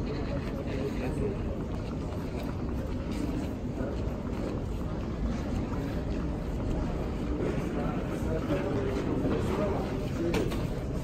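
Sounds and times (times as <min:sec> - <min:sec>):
wheeled suitcases rolling: 0:00.0 - 0:11.0.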